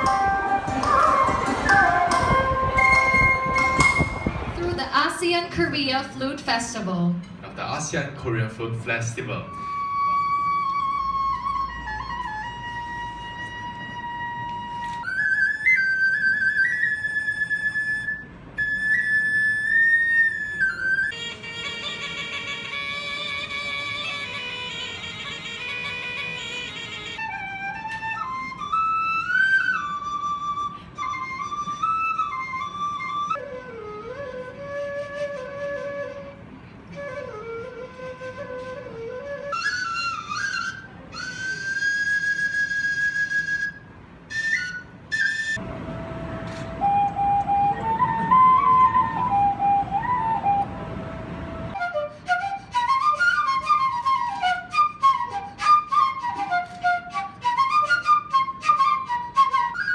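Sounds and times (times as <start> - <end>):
flute playing high notes: 0.0 - 4.8, 9.3 - 59.9
low wind instrument: 0.0 - 6.2, 9.2 - 59.9.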